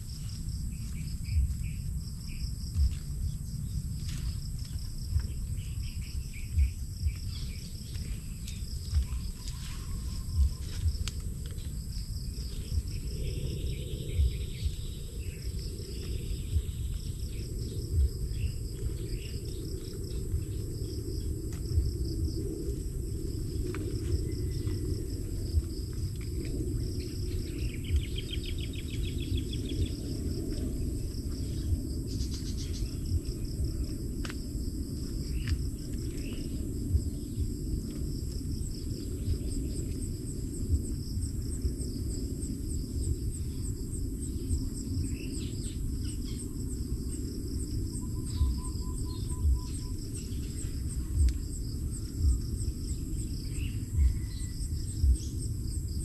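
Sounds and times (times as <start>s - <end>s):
insects trilling: 0.0s - 56.0s
low thumps: 2.6s - 5.5s.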